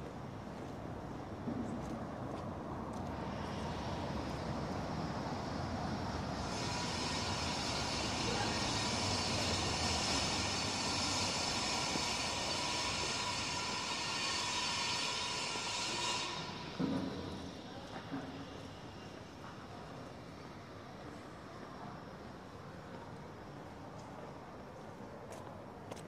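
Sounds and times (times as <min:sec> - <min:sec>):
strong hiss: 0:05.8 - 0:16.7.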